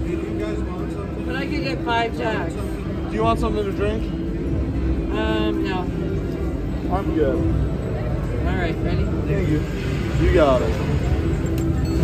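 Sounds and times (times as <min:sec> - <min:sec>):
casino background noise: 0:00.0 - 0:12.0
music: 0:00.0 - 0:12.0.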